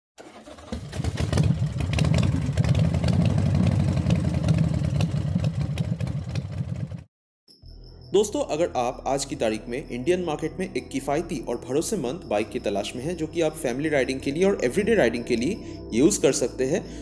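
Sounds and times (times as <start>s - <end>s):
motorcycle engine starting and running: 0.2s - 7.1s.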